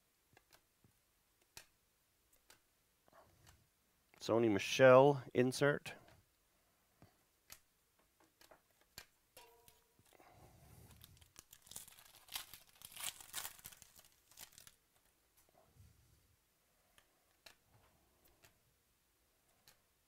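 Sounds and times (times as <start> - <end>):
foil pack tearing and crinkling: 11.0 - 14.8.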